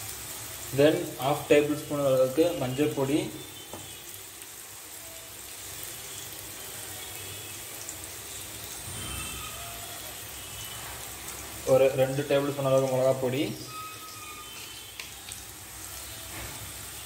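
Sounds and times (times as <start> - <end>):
onions frying in oil: 0.0 - 17.0.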